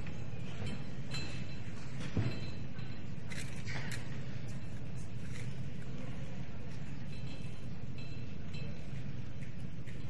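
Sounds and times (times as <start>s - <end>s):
low hall hum: 0.0s - 10.0s.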